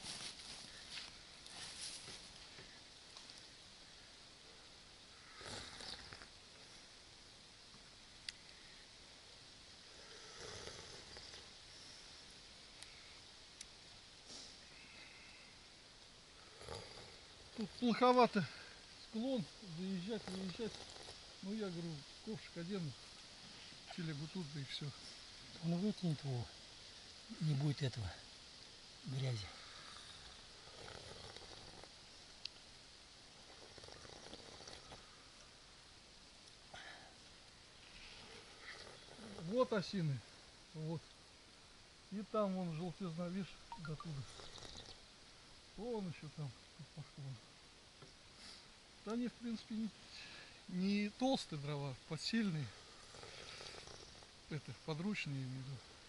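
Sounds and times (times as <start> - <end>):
faint rustling: 0.0 - 3.5
soft rustle: 0.0 - 4.7, 16.7 - 46.6
faint ticks: 0.7 - 3.5, 7.7 - 8.8, 12.7 - 15.4, 19.7 - 21.4, 29.8 - 32.8, 36.3 - 39.5, 49.0 - 49.2.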